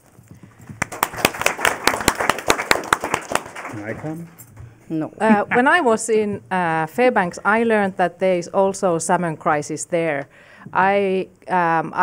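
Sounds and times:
many hands clapping: 0.4s - 4.2s.

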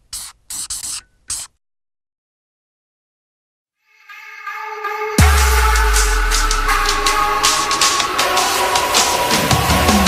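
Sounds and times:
short hissing strokes: 0.0s - 1.6s.

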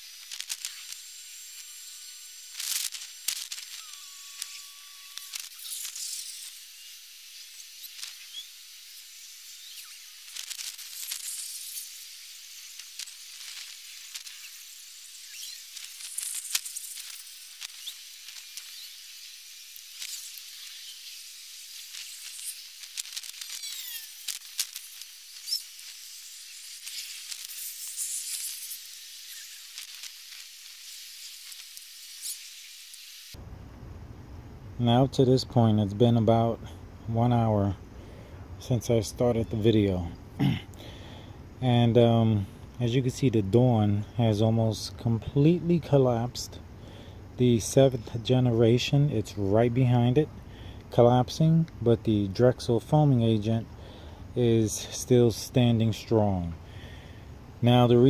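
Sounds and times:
soap foam fizzing and popping: 0.0s - 33.4s.

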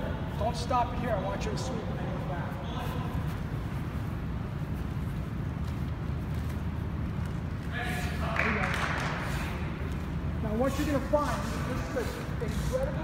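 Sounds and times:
low room rumble: 0.0s - 13.0s
hiss-like scuff: 9.0s - 13.0s.

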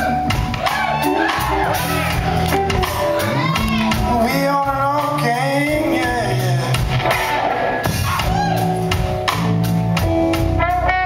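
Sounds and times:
blues-rock band playing: 0.0s - 11.0s.

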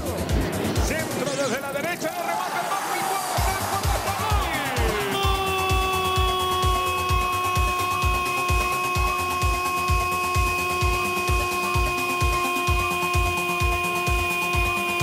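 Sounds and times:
fast drum beat: 2.8s - 15.0s.

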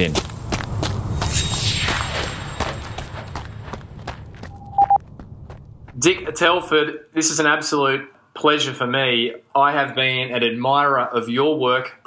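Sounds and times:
running footsteps: 0.0s - 1.4s, 2.1s - 6.7s
low hum: 0.3s - 6.8s
short high beep: 4.5s - 5.0s.

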